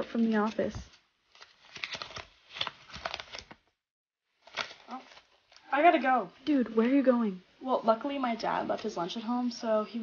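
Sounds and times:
paper rustling and crinkling: 0.0s - 6.0s.

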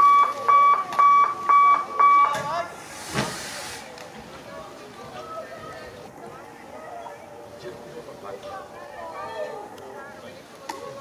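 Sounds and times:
electronic beeps: 0.0s - 2.4s
short burst of hiss: 2.8s - 4.0s.

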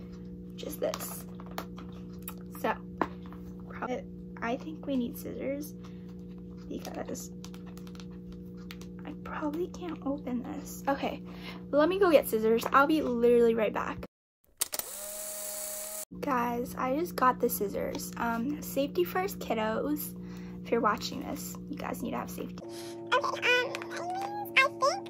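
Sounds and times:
steady low hum: 0.0s - 14.1s, 14.9s - 25.0s
electronic whir with hum: 14.6s - 23.6s.

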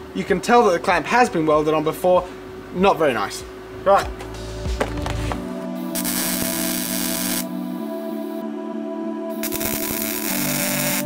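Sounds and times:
slow held chords music: 3.4s - 11.0s
welding crackle: 5.9s - 7.5s, 9.4s - 11.0s.

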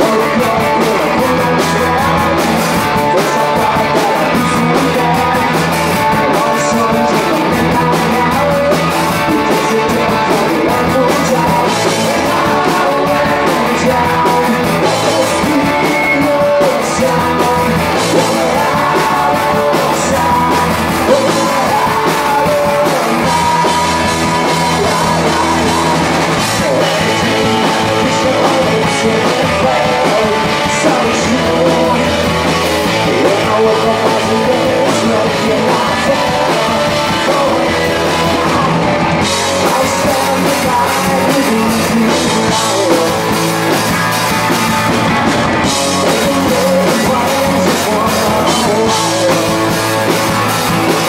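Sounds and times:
bass guitar: 0.0s - 51.0s
distorted electric guitars: 0.0s - 51.0s
drum kit: 0.0s - 51.0s
man singing lead vocal: 0.0s - 51.0s.

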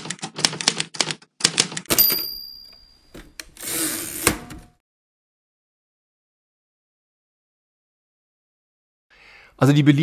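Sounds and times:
typewriter keystrokes: 0.0s - 2.4s
typewriter bell ding: 1.9s - 3.2s.

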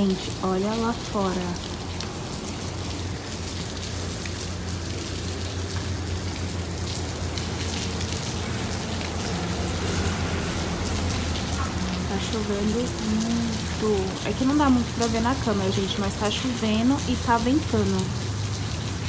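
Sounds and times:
heavy rain falling: 0.0s - 19.0s.

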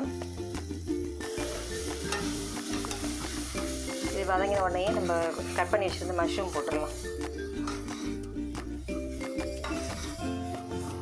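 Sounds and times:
masala sizzling in pan: 0.0s - 11.0s
metal spatula scraping pan: 2.0s - 4.2s, 4.9s - 8.3s, 9.1s - 10.3s.

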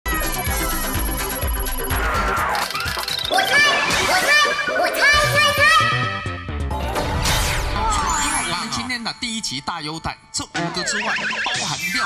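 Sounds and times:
bright electronic theme music: 0.1s - 4.8s.

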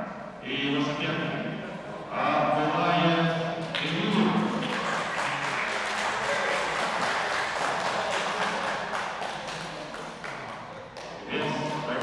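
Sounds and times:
small group applauding: 3.6s - 12.0s.

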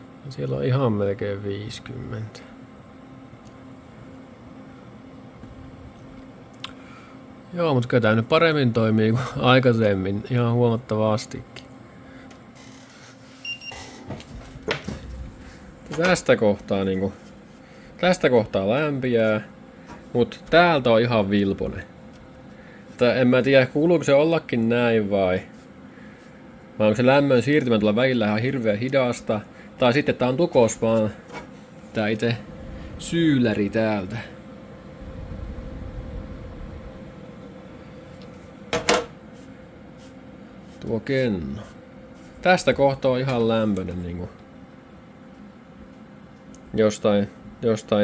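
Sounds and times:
computer fans and pump humming: 0.0s - 48.0s
low rumble: 34.7s - 37.7s.

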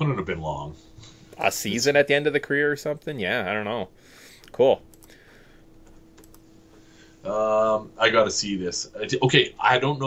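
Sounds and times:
low steady hum: 0.0s - 10.0s
keyboard and mouse clicks: 4.4s - 5.2s, 5.8s - 6.4s.

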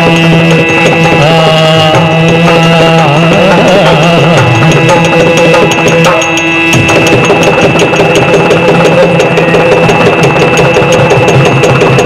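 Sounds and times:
drums playing fast strokes: 0.0s - 12.0s
steady drone: 0.0s - 12.0s.

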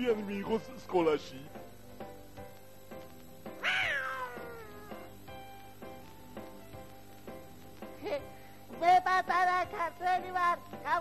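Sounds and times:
background music with steady beat: 0.0s - 11.0s
meow-like call: 3.6s - 5.1s.

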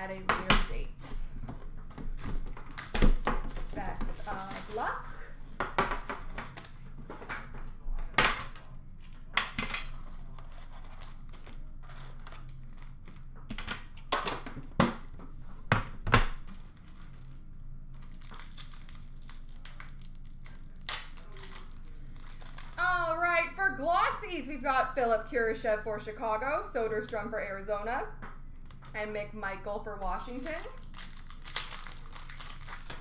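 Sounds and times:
foil wrappers crinkling and tearing: 2.0s - 6.8s, 8.4s - 14.5s, 16.5s - 22.8s, 30.2s - 33.0s.

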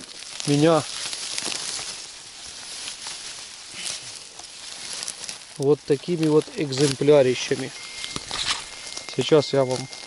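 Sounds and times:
grass rustling and crackling: 0.0s - 10.0s
grass stems snapping: 0.0s - 10.0s.

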